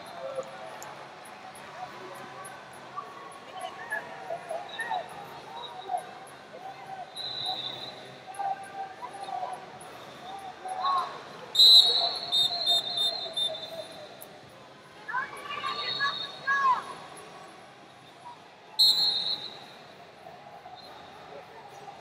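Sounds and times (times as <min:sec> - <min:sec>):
referee's whistle blast: 0:11.6 - 0:13.8, 0:18.8 - 0:19.7.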